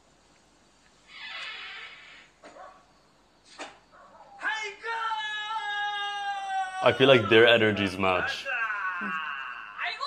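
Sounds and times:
man speaking: 0:04.4 - 0:09.2
person calling out oh: 0:08.4 - 0:09.9.

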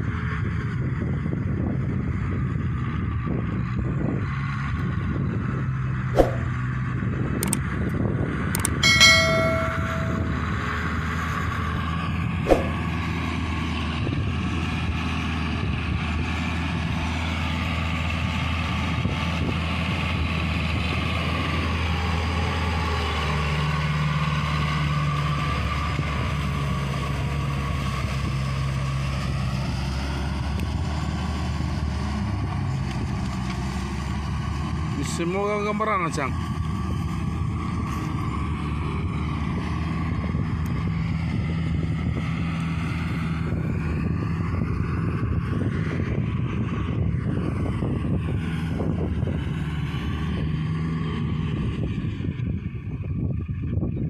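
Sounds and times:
tractor diesel engine running: 0:00.1 - 0:35.0
brief high tone: 0:08.8 - 0:10.7.

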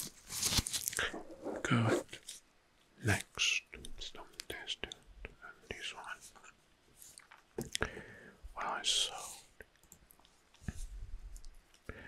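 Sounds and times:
man whispering: 0:01.0 - 0:02.2, 0:03.0 - 0:06.6, 0:08.5 - 0:09.7.

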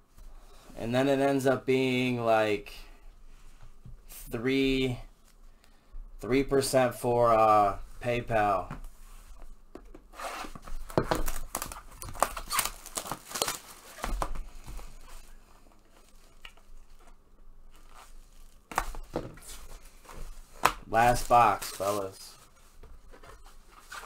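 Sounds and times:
plastic rustling: 0:10.5 - 0:24.0
plastic wrap tearing and crinkling: 0:10.7 - 0:19.0, 0:19.7 - 0:22.8.

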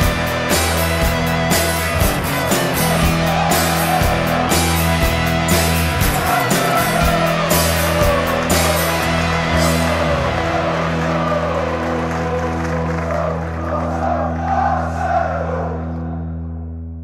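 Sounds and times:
drum strikes: 0:00.0 - 0:10.7
rock band final chord ringing: 0:00.0 - 0:13.0.

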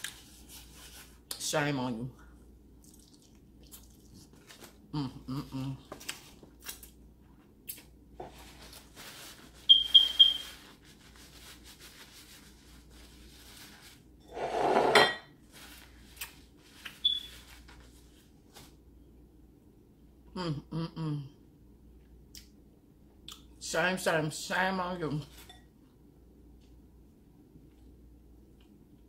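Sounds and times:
paper napkin rustling: 0:00.0 - 0:01.2, 0:08.2 - 0:18.8
eating noises: 0:02.8 - 0:04.3.

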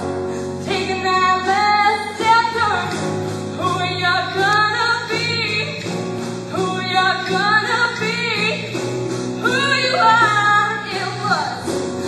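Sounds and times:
instrumental backing music: 0:00.0 - 0:12.0
woman singing: 0:00.5 - 0:11.8.

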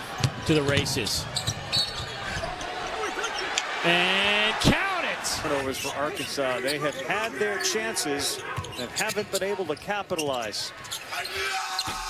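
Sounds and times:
crowd hubbub: 0:01.3 - 0:09.2
commentator speaking: 0:03.8 - 0:10.3.

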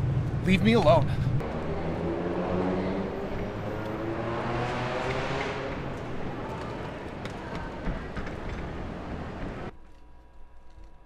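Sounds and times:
vehicle engine droning: 0:00.0 - 0:09.7.

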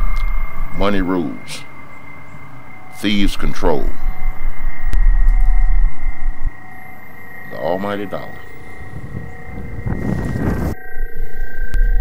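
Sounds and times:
wind buffeting microphone: 0:00.0 - 0:10.8
faint high whine: 0:00.0 - 0:12.0.

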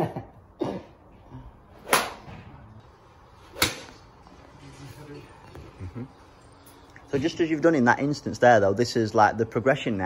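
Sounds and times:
golf club hitting ball: 0:01.8 - 0:02.3, 0:03.5 - 0:04.0.

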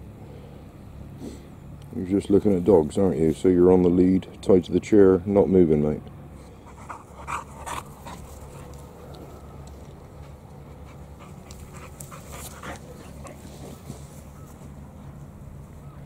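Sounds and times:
dog panting: 0:06.6 - 0:09.3, 0:10.1 - 0:13.9.

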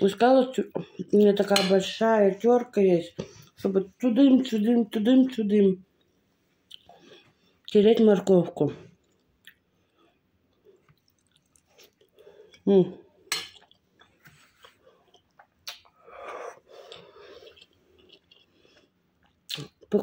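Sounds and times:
person chewing food: 0:06.6 - 0:07.7, 0:08.9 - 0:12.6, 0:13.2 - 0:19.9
sharp mouth clicks: 0:15.6 - 0:16.0.

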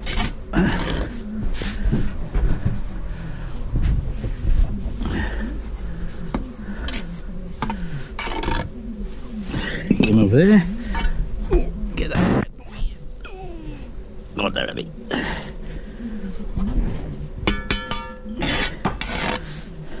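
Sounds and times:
trowel scraping mortar and blocks: 0:00.0 - 0:01.2, 0:06.8 - 0:08.8, 0:17.5 - 0:19.7.

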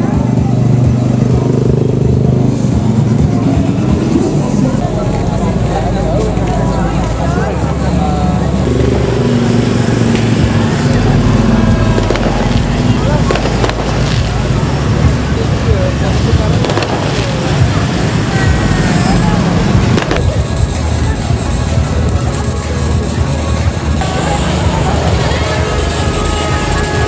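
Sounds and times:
crowd talking: 0:00.0 - 0:27.0
motorbike and car engines: 0:00.0 - 0:27.0.

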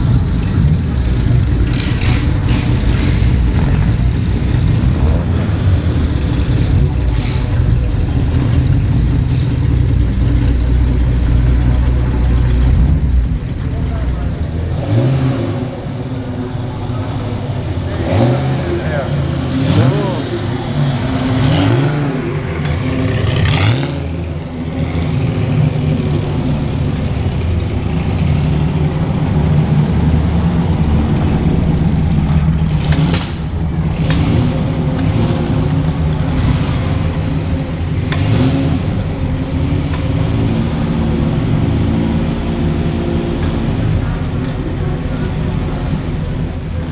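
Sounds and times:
car engines revving: 0:00.0 - 0:46.9.

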